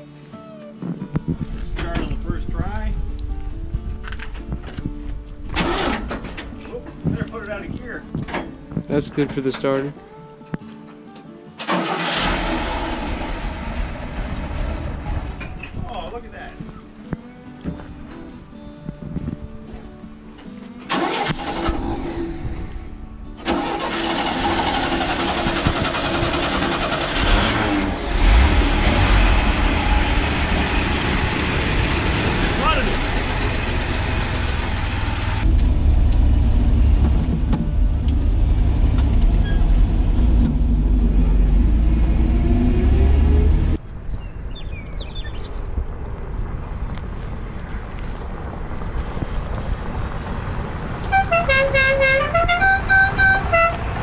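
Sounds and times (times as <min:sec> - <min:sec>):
starter cranking engine: 0:05.6 - 0:06.4, 0:11.6 - 0:15.6, 0:20.9 - 0:22.0, 0:23.4 - 0:36.3
truck engine running and revving: 0:12.1 - 0:15.7, 0:23.4 - 0:43.8, 0:46.0 - 0:54.0.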